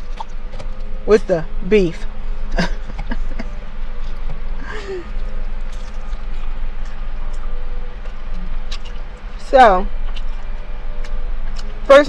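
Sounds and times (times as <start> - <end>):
low car interior hum: 0.0 - 12.0.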